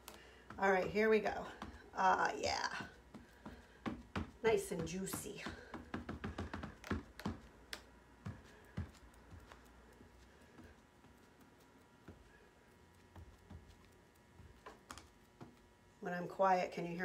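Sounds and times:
fluorescent lights buzzing: 0.0 - 17.0.

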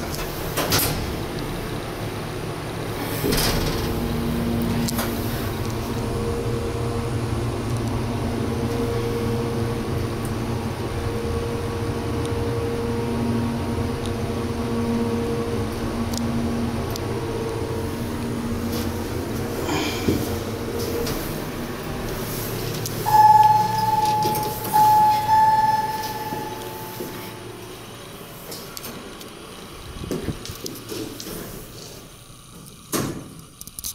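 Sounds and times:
elevator arrival tone: 0.0 - 29.8
elevator humming: 0.0 - 33.4.

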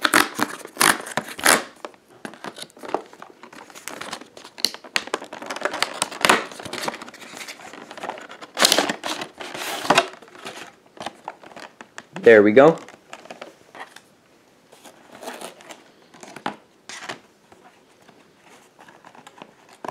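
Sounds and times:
cardboard tearing: 0.0 - 1.8, 3.6 - 11.2, 14.8 - 17.1
packaging rustling: 0.0 - 14.1, 14.7 - 19.9.

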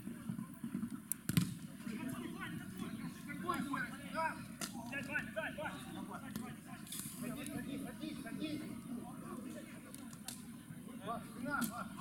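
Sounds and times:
faint players' voices: 0.0 - 12.0.

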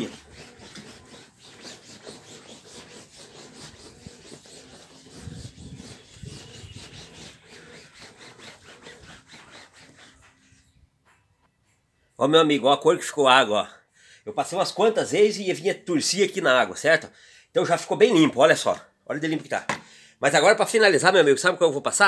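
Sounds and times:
damp cloth scrubbing fabric: 0.0 - 10.5.

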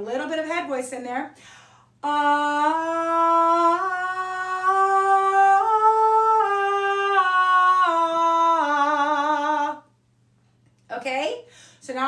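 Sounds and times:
woman singing vocal warm-up: 2.0 - 9.9.

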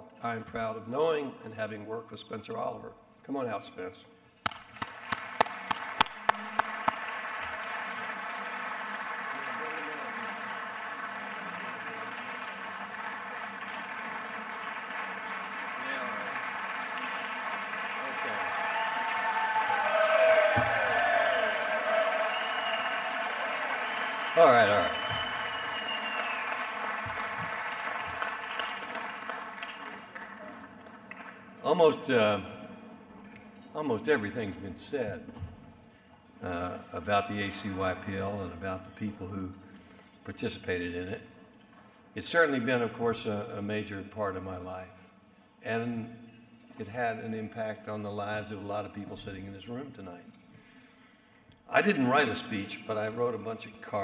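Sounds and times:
sharp claps close by: 4.4 - 18.3, 22.1 - 31.4
audience applause: 4.5 - 31.4.

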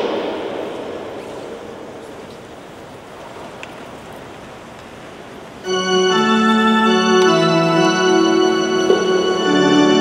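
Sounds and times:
church background hiss: 0.0 - 10.0.

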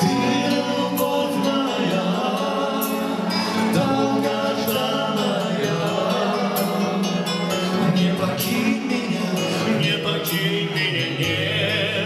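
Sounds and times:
amplified instrumental backing: 0.0 - 12.0
two men singing a duet: 0.0 - 12.0.

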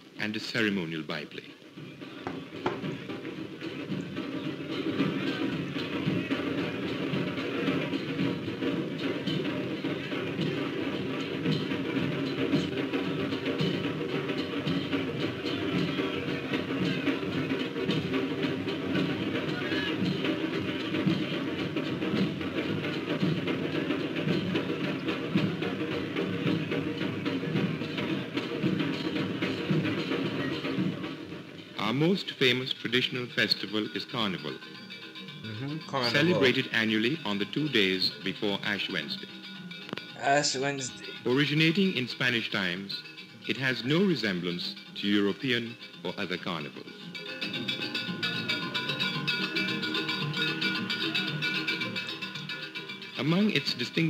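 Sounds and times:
large drums beating: 2.2 - 31.7.

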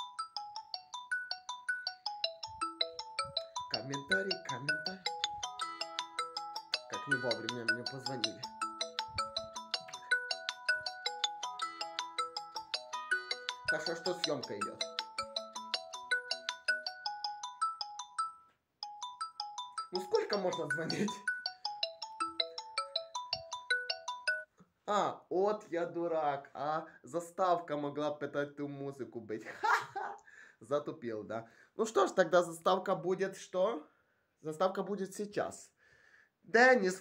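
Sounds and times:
mobile phone ringtone: 0.0 - 24.5.

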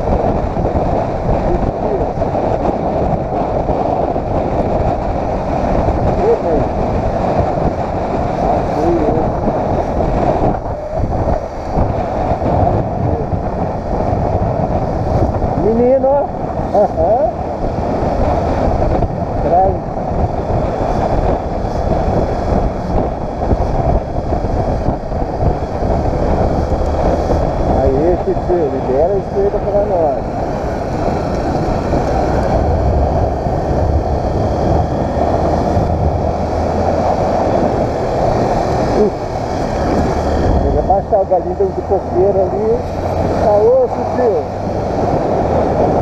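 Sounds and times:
motorcycle engine: 0.0 - 46.0
wind rush on microphone: 0.0 - 46.0.

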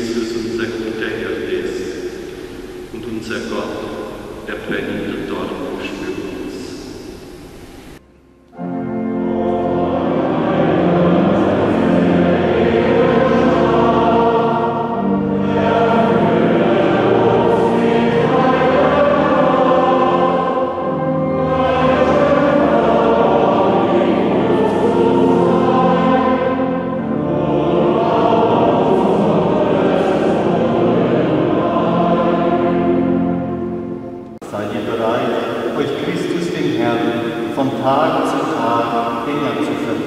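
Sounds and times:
congregation singing a hymn: 0.0 - 7.1, 8.5 - 40.0.

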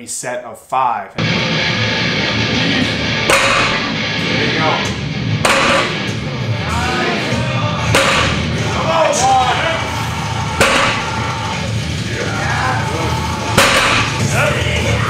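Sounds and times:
loud rock music: 1.2 - 15.0
heavy barbell thuds on floor: 3.3 - 3.8, 5.4 - 6.0, 10.6 - 11.2, 13.6 - 14.2.

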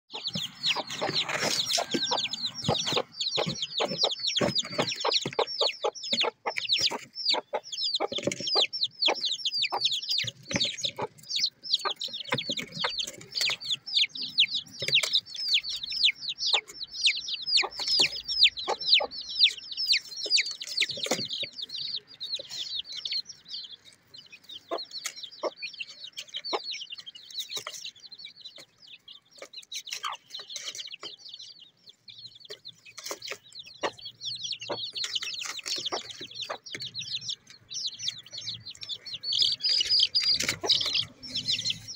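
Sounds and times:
chicks peeping: 0.1 - 41.9.

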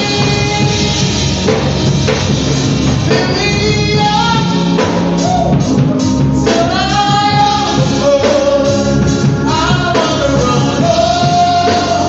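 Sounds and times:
group of singers: 0.0 - 1.6, 3.1 - 12.0
band accompaniment: 0.0 - 12.0.

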